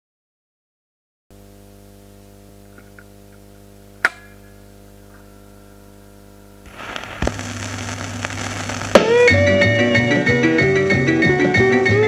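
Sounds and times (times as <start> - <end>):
record player amplifier humming: 1.4 - 9.6
vinyl surface hiss and crackle: 6.6 - 9.4
vinyl pop: 6.7 - 9.5.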